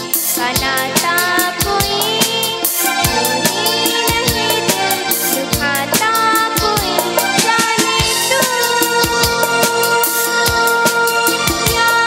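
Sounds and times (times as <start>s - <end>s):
electronic keyboard with steady beat: 0.0s - 12.0s
girl singing into a microphone: 0.0s - 12.0s.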